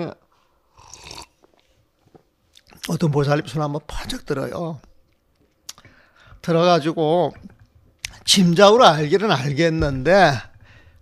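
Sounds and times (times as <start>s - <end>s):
man speaking: 2.8s - 4.9s, 6.4s - 10.6s
faint mouth clicks: 5.6s - 5.9s
short breath: 5.8s - 6.4s, 10.6s - 11.0s.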